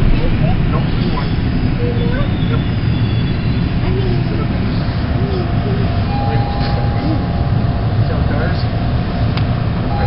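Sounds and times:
quiet voices: 0.0 - 10.0
subway car rumble: 0.0 - 10.0
faint steady tone: 5.4 - 9.2.

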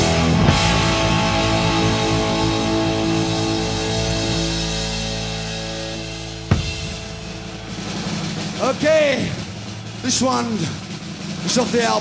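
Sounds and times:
audience noise: 0.0 - 12.0
man speaking over pa: 11.4 - 12.0.

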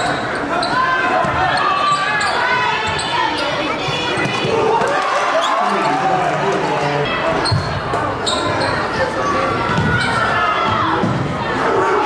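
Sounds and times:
voices echoing in hall: 0.0 - 12.0.

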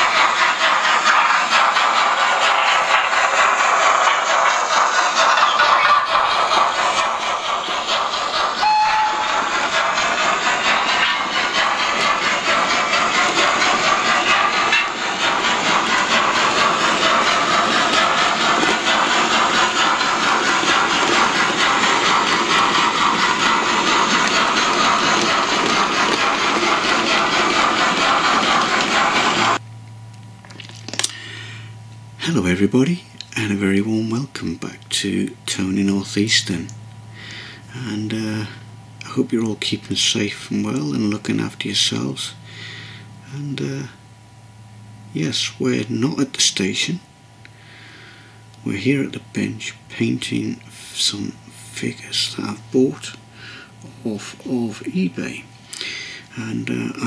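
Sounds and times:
steam train hiss and rumble: 0.0 - 29.6, 30.8 - 57.0
brief tone: 8.6 - 9.1.

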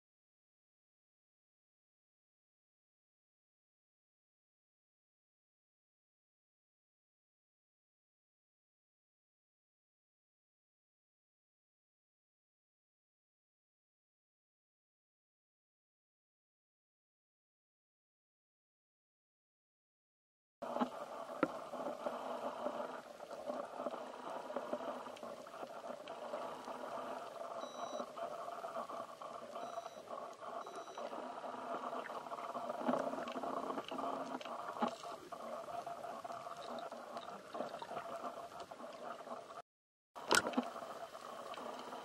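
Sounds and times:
small clicks and crackles: 20.6 - 39.6, 40.2 - 42.0
faint high beeps: 27.6 - 28.1, 29.5 - 31.1.

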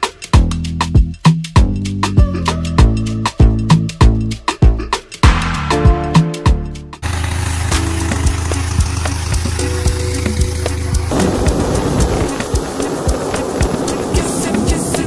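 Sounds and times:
background music with beat: 0.0 - 7.0, 7.7 - 15.0
inflator fan engine drone: 7.0 - 15.0
loud rush of air: 11.1 - 15.0.

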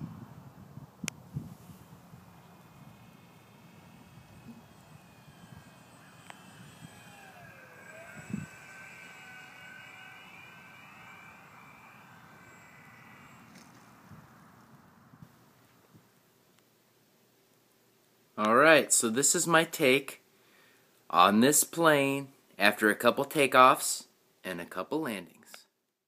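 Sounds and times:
wind rumble on microphone: 0.0 - 3.2
model plane motor whine: 1.3 - 15.8.

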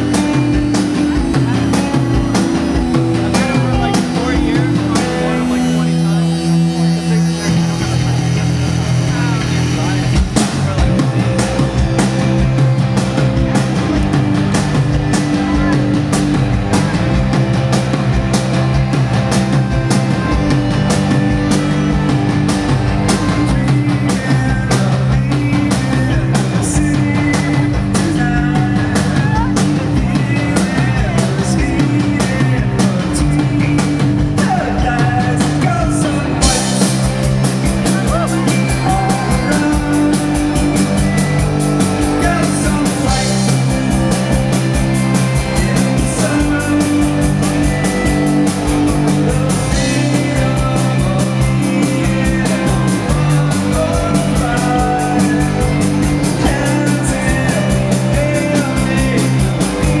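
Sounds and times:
drum kit beat: 0.0 - 60.0
electric guitars: 0.0 - 60.0
rock band playing: 0.0 - 60.0.

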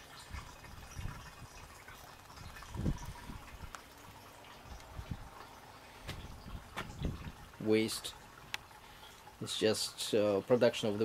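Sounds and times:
oil trickling into funnel: 0.0 - 11.0.

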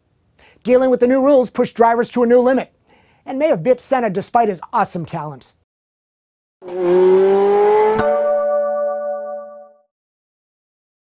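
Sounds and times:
car engine revving: 6.6 - 8.6.

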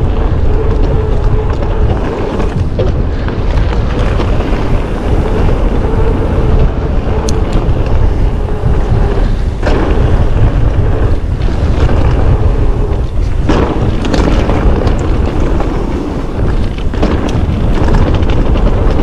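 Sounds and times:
mountain bike rumble and rattle: 0.0 - 19.0
wind on microphone: 0.0 - 19.0.

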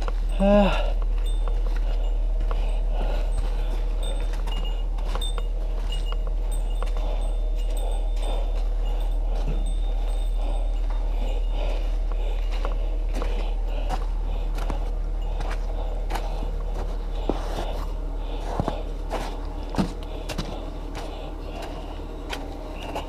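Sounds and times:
metal gear jingling: 0.0 - 11.6
footsteps crunching on gravel: 0.0 - 23.0
steady low rumble: 0.0 - 23.0.

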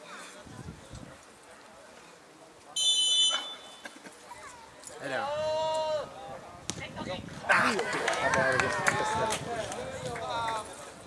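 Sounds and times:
faint crowd voices: 0.0 - 11.0
referee's whistle blast: 2.8 - 3.8.

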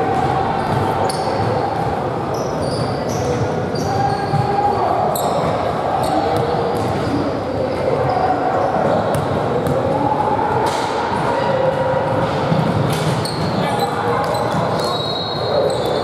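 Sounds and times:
indistinct echoing voices: 0.0 - 16.0.

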